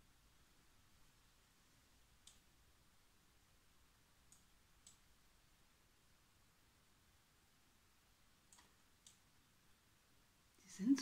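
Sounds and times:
faint computer mouse clicks: 2.2 - 2.4, 4.3 - 5.0, 8.5 - 9.3.

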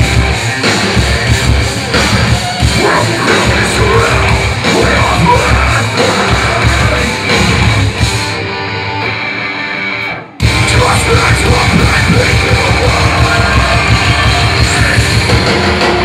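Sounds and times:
drums and cymbals: 0.0 - 8.4, 10.4 - 16.0
electric guitars: 0.0 - 16.0
rock vocals: 0.0 - 16.0.

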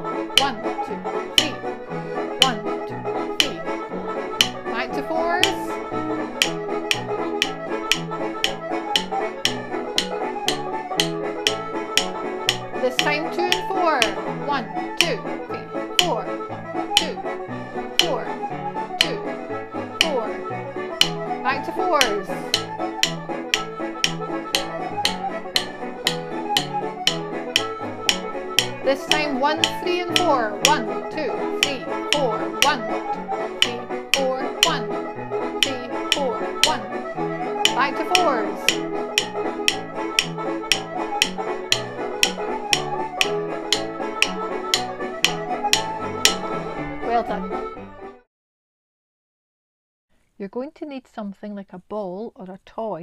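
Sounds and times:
drumsticks tapping a steady beat: 0.0 - 47.5
backing music with bass line: 0.0 - 48.1.

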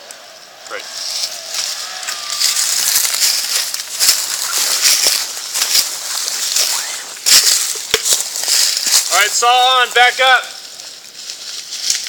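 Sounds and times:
leaves and undergrowth rustling: 0.0 - 12.0.

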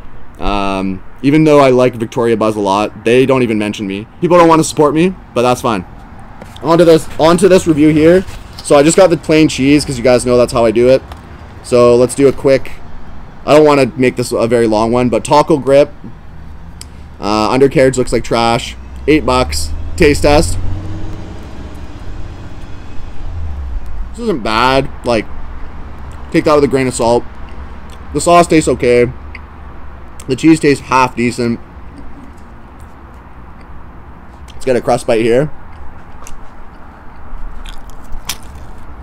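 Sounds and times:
road traffic rumble: 0.0 - 39.0
faint chewing: 35.7 - 38.9
pizza crust crunching: 37.6 - 38.9.

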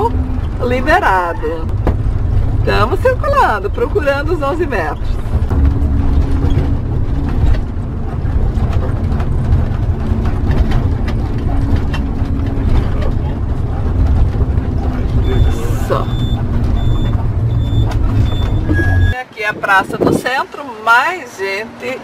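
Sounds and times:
engine low rumble: 0.0 - 22.0
road noise: 0.0 - 22.0
faint high beep: 15.2 - 19.2.

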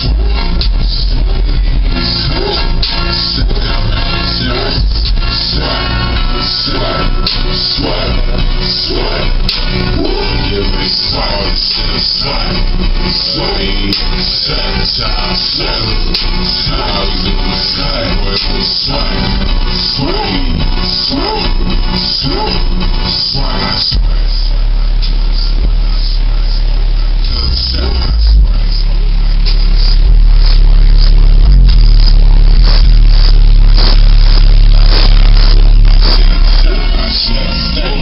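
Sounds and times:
deep sustained bass: 0.0 - 38.0
song with vocals on car stereo: 0.0 - 38.0.

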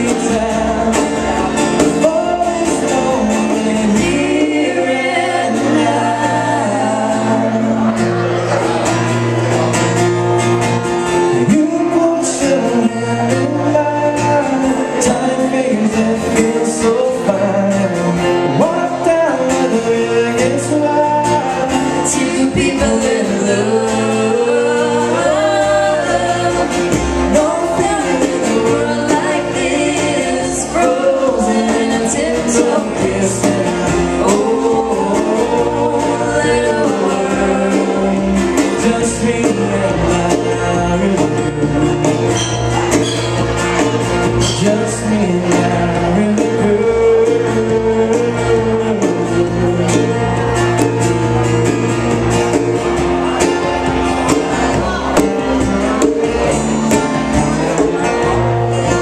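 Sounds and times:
woman singing along: 0.0 - 8.0, 18.5 - 42.3
man singing lead: 0.0 - 8.9, 11.2 - 59.0
acoustic guitars strummed: 0.0 - 59.0.

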